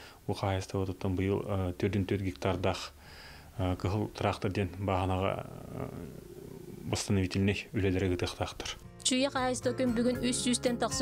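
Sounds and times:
man speaking: 0.3s - 3.0s, 3.6s - 8.8s.

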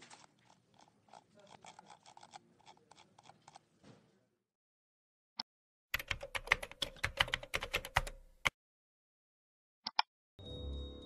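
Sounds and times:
typing on computer keyboard: 6.0s - 8.2s.

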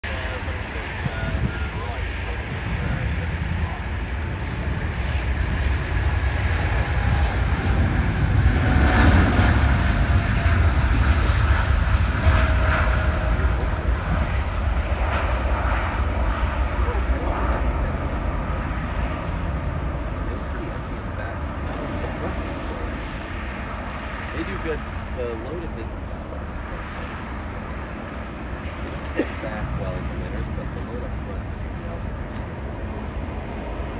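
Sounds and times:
jet engines at takeoff: 0.0s - 33.9s.

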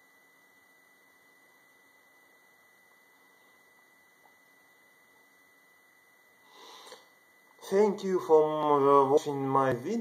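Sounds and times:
steady high-pitched whine: 0.0s - 10.0s.

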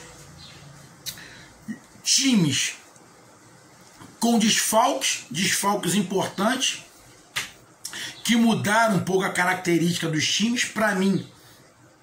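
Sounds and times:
mouth click: 1.0s - 1.3s
person speaking: 1.0s - 3.2s, 3.9s - 11.5s.

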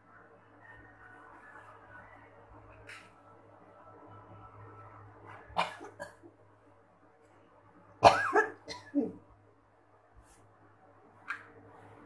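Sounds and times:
person coughing: 8.0s - 9.2s.

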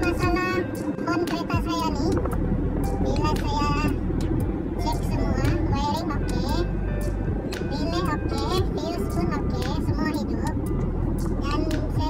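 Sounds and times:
person talking or singing: 0.0s - 2.3s, 3.0s - 4.0s, 4.8s - 6.8s, 7.6s - 10.6s, 11.3s - 12.0s
background music: 0.0s - 12.0s
low rumble: 0.0s - 12.0s.

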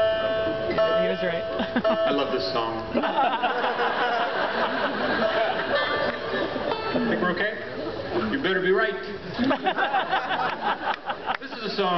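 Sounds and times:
banjo strings plucked: 0.0s - 3.0s, 5.2s - 8.4s.

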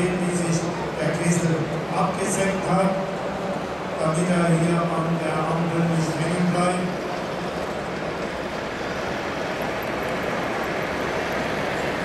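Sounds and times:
busy hall background noise: 0.0s - 12.0s
man's voice: 4.0s - 6.9s.

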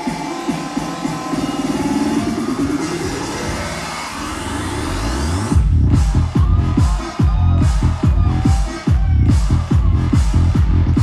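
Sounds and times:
heavy bass line and kick drum: 0.0s - 11.0s
loud electronic dance music: 0.0s - 11.0s
rising synth sweep: 1.9s - 5.6s.

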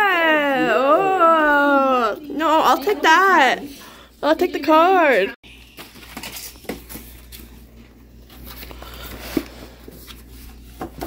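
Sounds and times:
paper rustling and crinkling: 5.5s - 11.0s.

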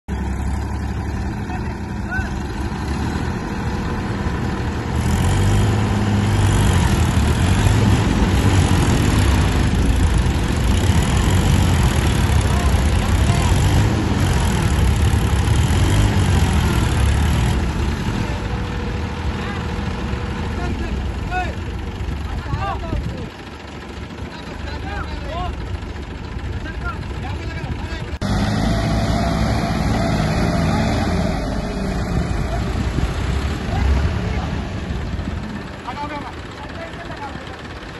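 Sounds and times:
tractor engines straining: 0.1s - 37.9s.

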